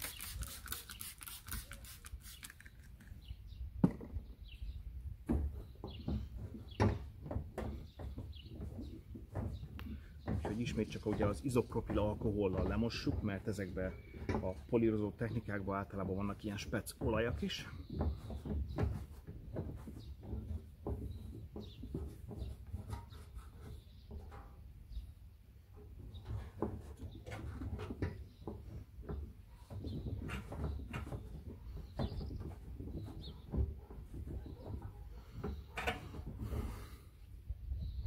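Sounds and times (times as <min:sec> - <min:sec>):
small knocks: 0:05.2 - 0:24.6.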